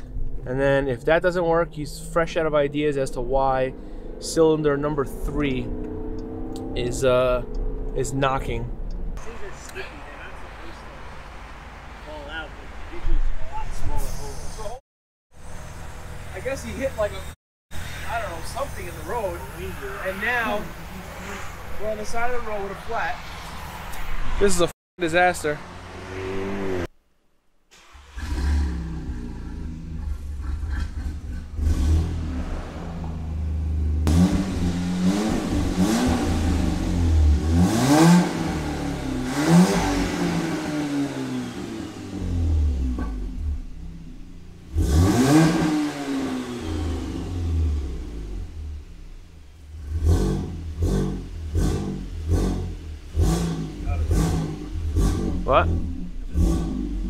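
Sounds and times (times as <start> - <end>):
car engine revving: 0.0 - 14.2, 15.4 - 27.0, 27.8 - 57.0.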